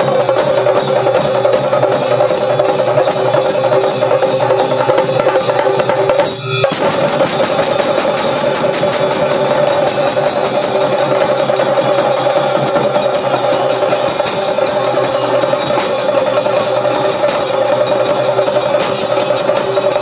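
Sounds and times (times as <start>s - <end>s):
chenda drums rolling: 0.0s - 20.0s.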